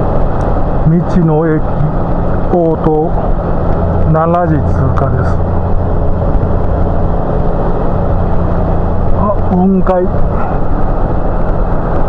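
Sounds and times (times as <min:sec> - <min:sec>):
motorcycle engine drone: 0:00.0 - 0:12.0
wind and road noise: 0:00.0 - 0:12.0.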